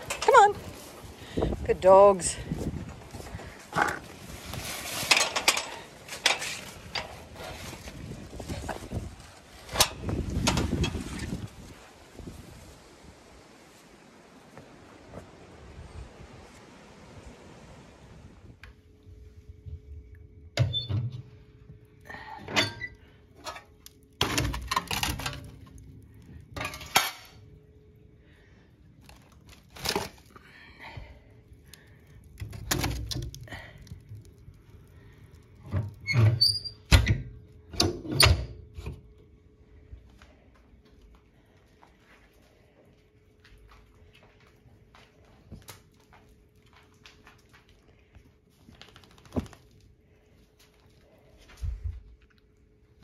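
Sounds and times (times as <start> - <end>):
wind buffeting microphone: 0.6 - 4.7, 7.4 - 13.4.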